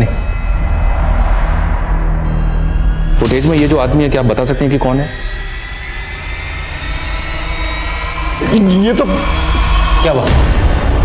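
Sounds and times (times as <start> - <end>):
faint sustained high tones: 0.0 - 10.4
low rumbling drone: 0.0 - 11.0.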